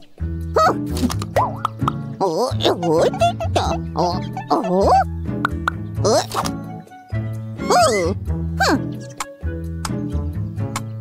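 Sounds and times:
cartoon background music: 0.0s - 11.0s
cartoon character vocalization: 0.6s - 0.9s, 2.2s - 5.1s, 6.0s - 6.5s, 7.6s - 8.9s
pop effects: 0.9s - 2.0s, 5.4s - 6.6s.

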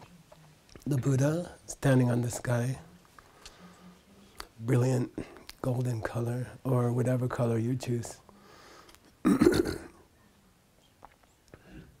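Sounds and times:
man coughing: 9.2s - 9.9s.

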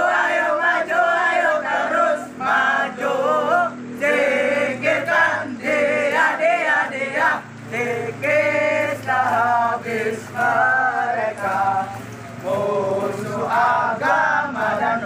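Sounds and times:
men singing a marching song: 0.0s - 15.0s.

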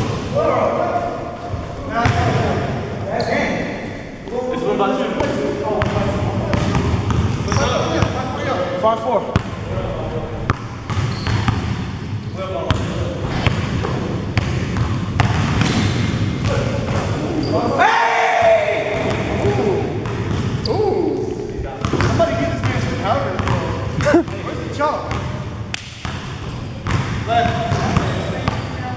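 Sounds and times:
basketball bouncing on court floor: 10.5s - 11.8s, 12.7s - 17.0s, 20.0s - 20.6s, 21.8s - 22.8s, 25.8s - 28.7s
players calling out: 24.0s - 24.3s.

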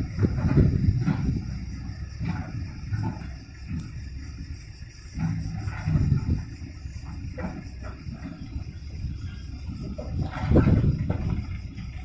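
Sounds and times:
diesel machinery rumble: 0.0s - 12.0s
steady engine hum: 0.0s - 12.0s.

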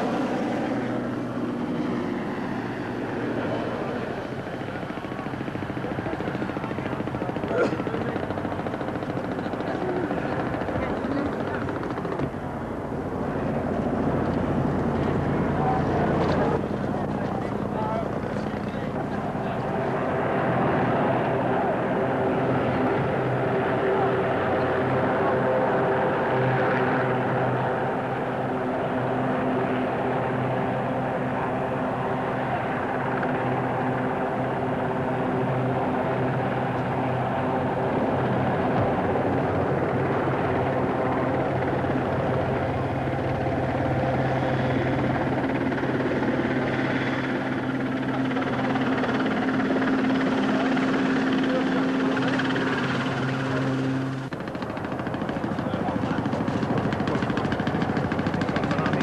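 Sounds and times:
faint voices: 0.0s - 59.0s
helicopter engine and rotor drone: 0.0s - 59.0s.

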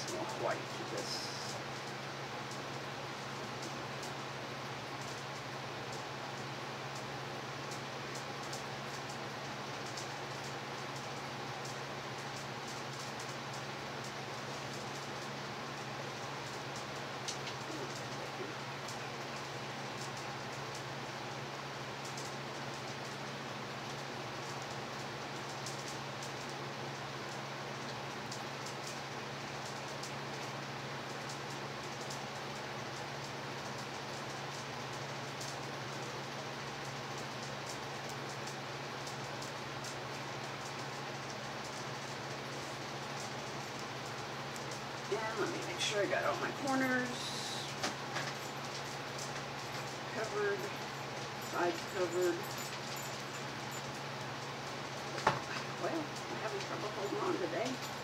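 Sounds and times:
steady hiss: 0.0s - 58.0s.

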